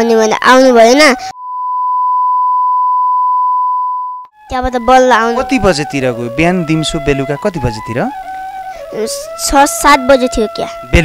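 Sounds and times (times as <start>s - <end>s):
steady beep tone: 1.3s - 4.3s.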